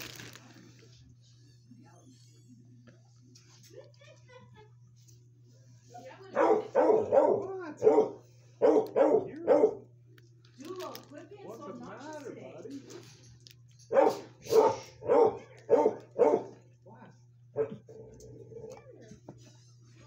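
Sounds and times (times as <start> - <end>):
dogs barking: 6.3 - 9.9, 13.9 - 16.8, 17.5 - 18.8.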